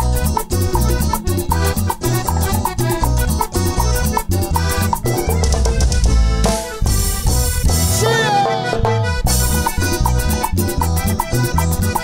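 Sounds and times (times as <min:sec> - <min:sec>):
accordion: 0:00.0 - 0:12.0
dance band playing: 0:00.0 - 0:12.0
drum kit and percussion beat: 0:00.0 - 0:12.0.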